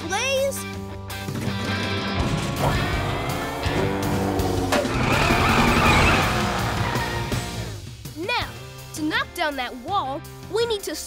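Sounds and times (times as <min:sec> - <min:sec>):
cartoon background music: 0:00.0 - 0:11.0
mechanical vehicle sound effects: 0:02.4 - 0:07.7.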